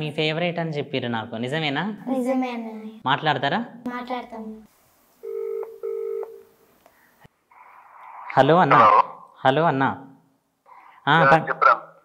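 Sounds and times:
telephone ringback tone: 5.2 - 6.4.

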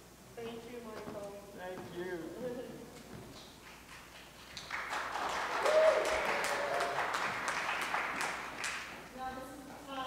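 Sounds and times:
audience applauding: 3.7 - 9.1.

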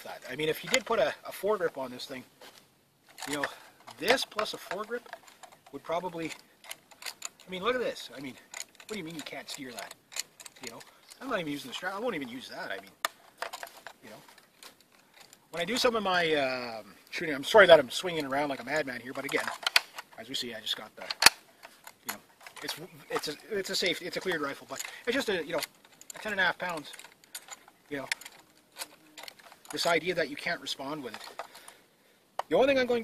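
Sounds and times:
light clicks and knocks of rifle: 2.4 - 16.1, 17.0 - 32.9.

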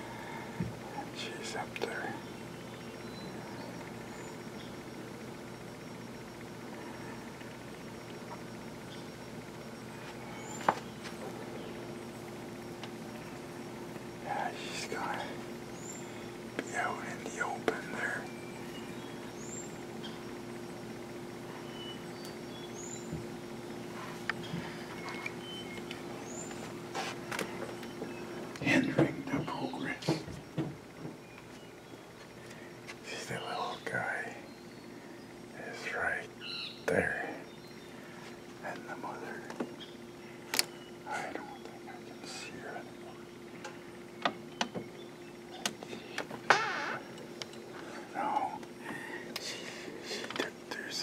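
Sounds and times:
steady low hum: 0.0 - 51.0
whisper-like sounds: 0.9 - 2.2, 14.2 - 15.4, 16.6 - 18.3, 33.0 - 34.5, 35.6 - 37.5, 38.6 - 39.6, 41.0 - 43.3, 48.0 - 51.0
bird chirping: 1.2 - 7.1, 7.9 - 13.4, 14.0 - 26.7, 31.2 - 51.0.

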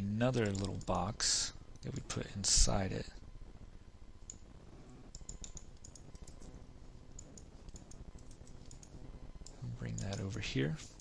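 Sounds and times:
man speaking: 0.0 - 3.2, 9.6 - 11.0
faint low hum: 0.0 - 11.0
mouse and keyboard clicks: 7.2 - 10.3.

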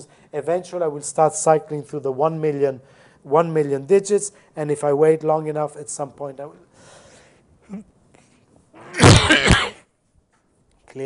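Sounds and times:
person sneezing: 8.8 - 9.8.

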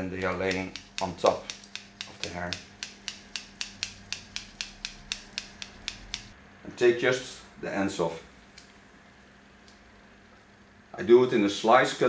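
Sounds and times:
scissors snipping hair: 0.0 - 6.4.

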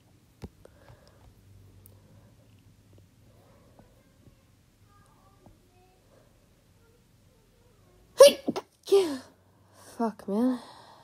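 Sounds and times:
person sneezing: 8.2 - 9.2.

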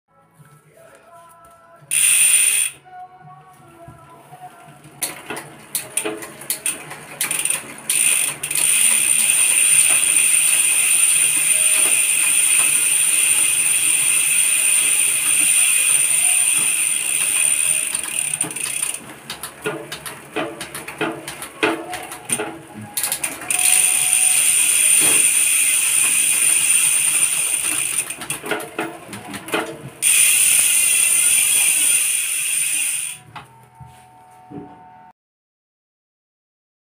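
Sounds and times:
bicycle chain clicking and clattering: 1.9 - 2.8, 5.0 - 33.2
hub ratcheting: 1.9 - 2.8, 5.0 - 33.2
spinning wheel whirring buzz: 1.9 - 2.8, 5.0 - 33.3.

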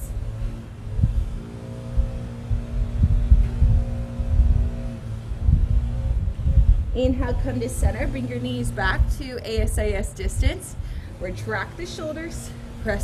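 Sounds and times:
droning motor hum: 0.0 - 13.0
low rumble: 0.0 - 13.0.

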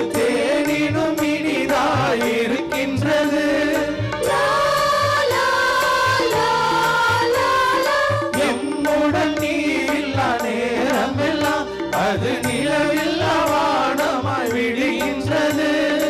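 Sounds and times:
person singing a hymn: 0.0 - 16.0.

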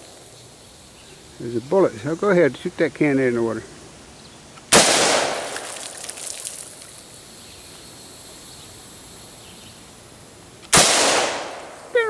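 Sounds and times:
gunshot echo: 4.7 - 5.8, 10.7 - 11.9
rifle shots: 4.7 - 5.9, 10.7 - 11.9.

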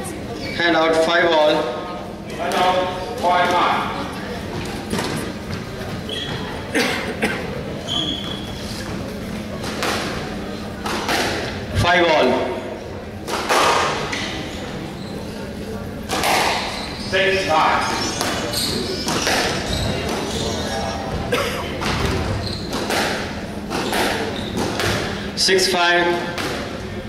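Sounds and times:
squash ball thwacks: 9.6 - 11.6, 13.3 - 14.0, 16.1 - 16.7, 21.8 - 25.2, 26.3 - 26.8.

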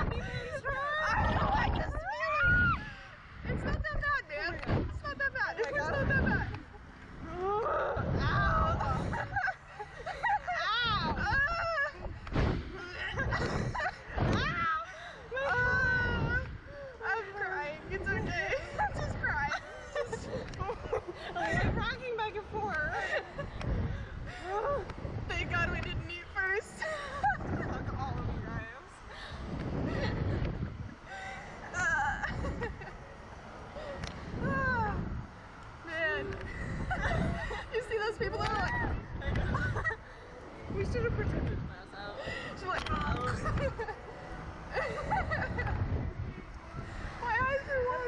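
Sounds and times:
women laughing and squealing: 0.0 - 41.5, 42.1 - 48.0
wind rumbling on microphone: 0.0 - 48.0.

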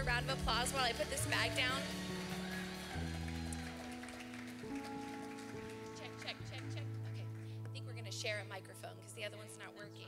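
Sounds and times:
soft keyboard chords: 0.0 - 10.0
audience applause: 1.4 - 6.7.

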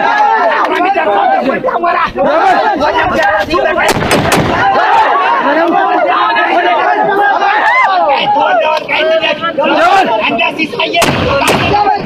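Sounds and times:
sharp cracks: 3.8 - 4.8, 11.0 - 12.0.

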